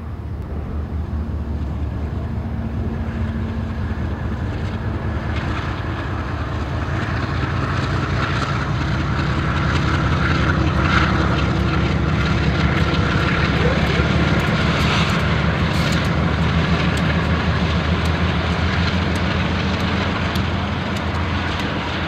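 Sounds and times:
deep locomotive engine drone: 0.0 - 22.0.

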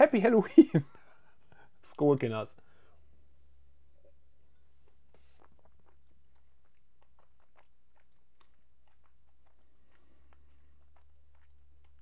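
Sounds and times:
wet mouth clicks and smacks: 4.8 - 12.0.

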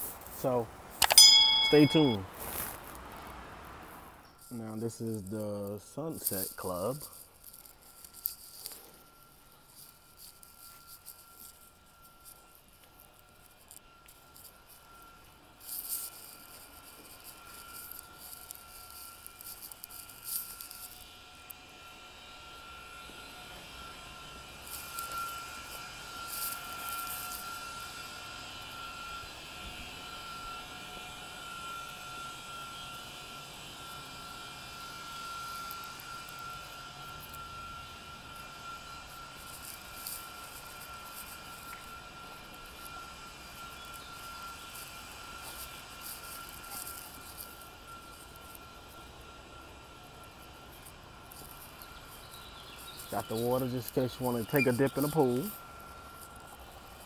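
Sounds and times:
constant hiss: 0.0 - 57.0
high mechanical whine: 0.0 - 57.0.

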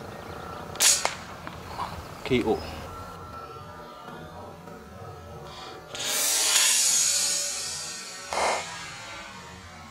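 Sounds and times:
air rifle firing crack: 0.7 - 1.4.

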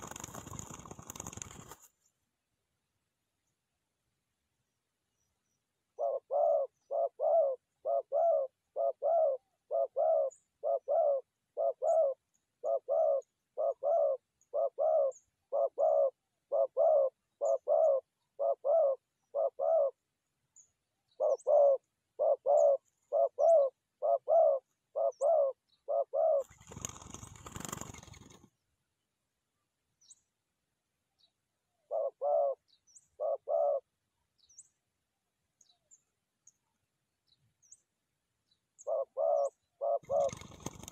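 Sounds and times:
wing flapping: 0.0 - 2.1, 26.4 - 28.6, 40.0 - 40.9
small birds chirping: 5.1 - 28.7, 29.9 - 30.4, 31.1 - 34.9, 35.5 - 40.9
dove cooing: 6.0 - 20.0, 21.1 - 28.3, 31.8 - 32.6, 33.2 - 33.9, 38.8 - 40.9.

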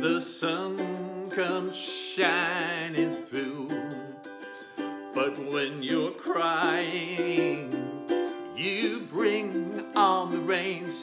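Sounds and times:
man singing: 0.0 - 11.0
ukulele strumming: 0.0 - 11.0.

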